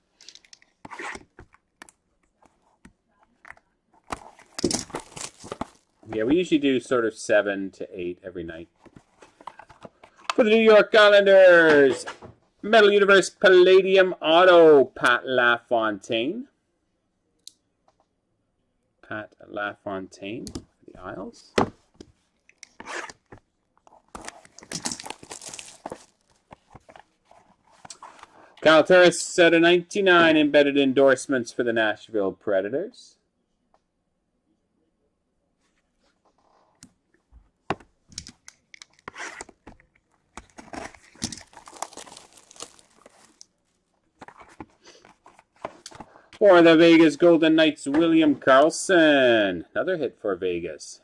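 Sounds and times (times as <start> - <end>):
cardboard packaging tearing: 4.1 - 5.9, 24.2 - 26.5, 40.4 - 43.4.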